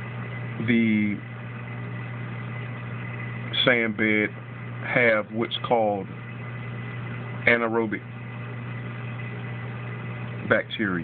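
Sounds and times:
aquarium pump humming: 0.0 - 11.0.

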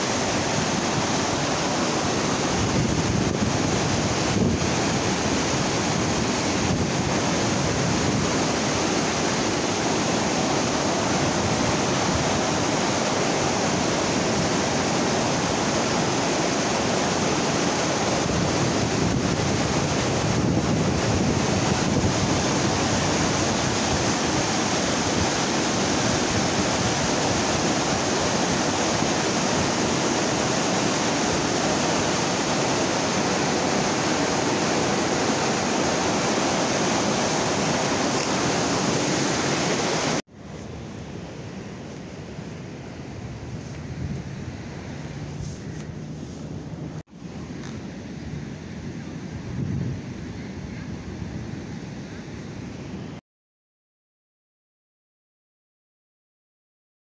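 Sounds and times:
white water rushing: 0.0 - 50.2
wind on microphone: 0.0 - 53.2.

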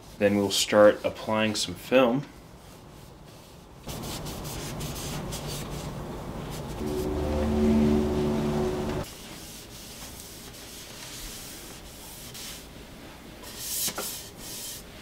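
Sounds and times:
droning hum with held tones: 6.8 - 9.0.

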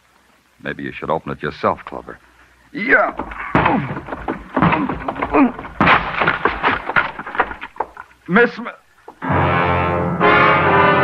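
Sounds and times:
door being forced open: 3.0 - 8.1.

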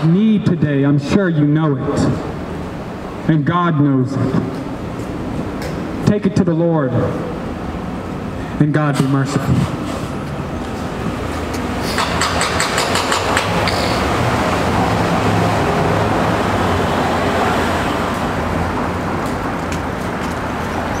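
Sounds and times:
road rumble: 4.1 - 21.0
cars passing: 6.9 - 21.0.

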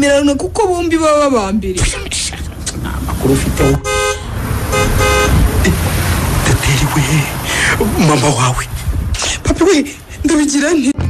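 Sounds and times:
low steady rumble: 0.0 - 10.5
vehicle horn honks: 3.5 - 5.7.

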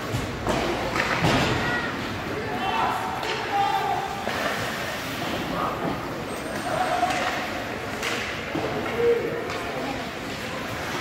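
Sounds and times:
hockey sticks and puck knocking: 7.0 - 10.4.

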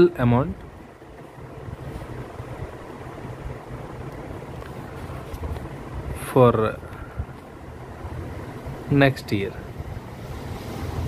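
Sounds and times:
low background rumble with hiss: 0.0 - 11.0.

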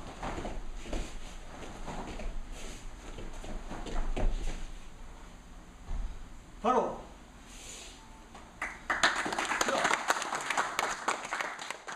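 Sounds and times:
group clapping in applause: 8.6 - 11.9.

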